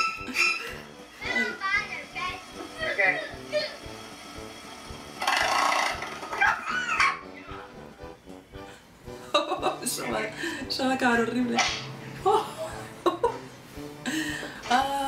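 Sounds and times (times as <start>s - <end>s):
background music: 0.0s - 15.0s
loud burst of noise: 1.8s - 6.4s.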